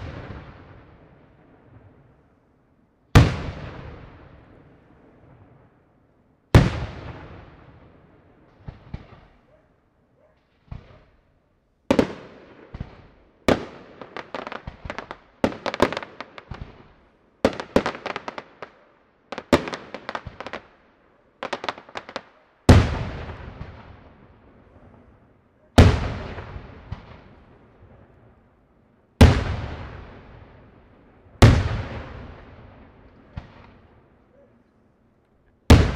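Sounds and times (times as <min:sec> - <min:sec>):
crackling firework volleys: 0:00.0 - 0:02.3.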